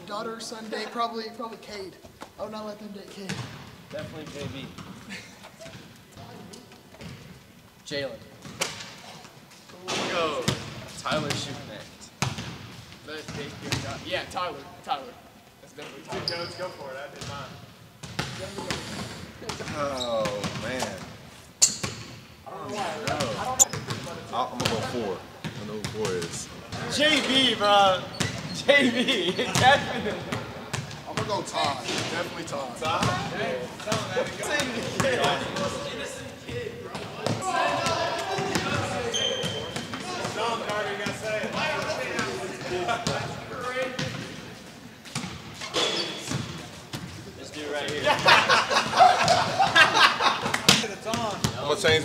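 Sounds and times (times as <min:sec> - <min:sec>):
people talking and laughing: 0:00.0 - 0:02.5, 0:03.9 - 0:07.0, 0:22.4 - 0:45.0, 0:45.6 - 0:52.0
basketballs bouncing on hardwood: 0:03.2 - 0:05.0, 0:18.0 - 0:18.8, 0:23.1 - 0:26.4
voices and laughter: 0:05.0 - 0:06.6, 0:28.6 - 0:30.7, 0:32.8 - 0:36.4, 0:47.7 - 0:51.2
high squeak: 0:16.2 - 0:16.9, 0:39.1 - 0:39.8, 0:45.6 - 0:46.3
basketball bouncing on wooden floor: 0:18.0 - 0:18.4.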